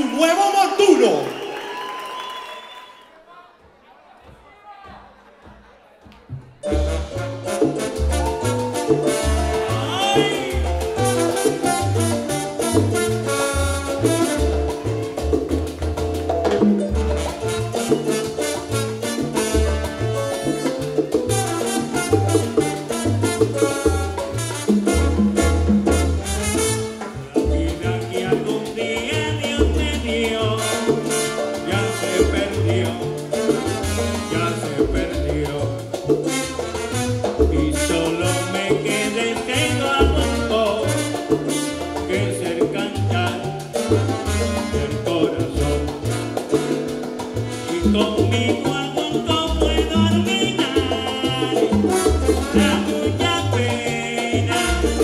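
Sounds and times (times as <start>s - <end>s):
congas: 0.0s - 55.0s
piano: 6.3s - 55.0s
upright bass: 6.4s - 55.0s
trombones: 6.6s - 15.6s, 16.8s - 55.0s.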